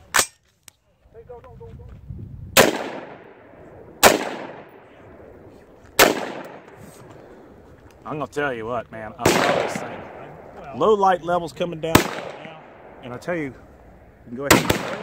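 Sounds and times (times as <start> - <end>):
rifle shots with echo: 2.6 - 7.5, 9.2 - 10.7, 11.8 - 15.0.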